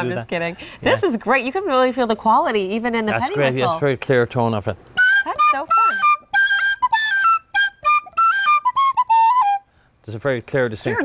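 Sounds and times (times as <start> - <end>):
penny whistle playing: 5.0 - 9.8.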